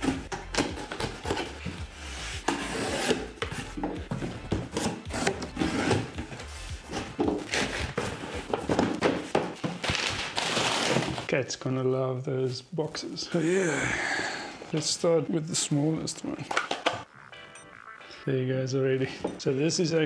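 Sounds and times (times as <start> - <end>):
tape tearing: 9.8 - 11.3.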